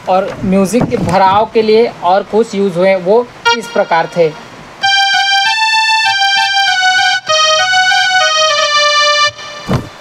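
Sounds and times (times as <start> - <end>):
mini keyboard melody: 3.5 - 10.0.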